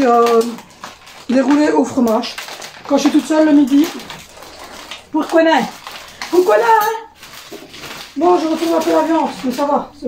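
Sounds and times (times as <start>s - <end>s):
woman speaking: 0.0s - 0.6s, 1.2s - 4.2s, 5.1s - 7.2s, 8.2s - 10.0s
clatter of dishes and utensils: 0.0s - 10.0s.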